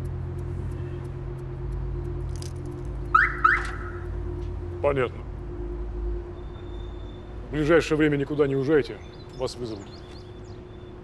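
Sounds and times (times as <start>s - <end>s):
car alarm chirps: 3.1s - 4.1s, 6.3s - 7.4s.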